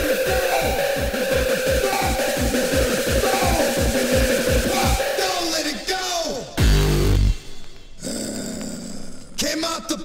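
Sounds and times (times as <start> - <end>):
deep bass note: 6.6 - 7.4.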